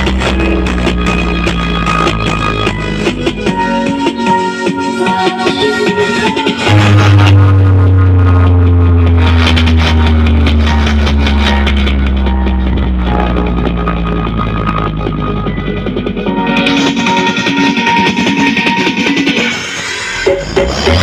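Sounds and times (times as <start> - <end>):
deep bass note sliding down: 0.0 - 3.5, 6.5 - 18.6
loud music through sound system: 0.0 - 21.0.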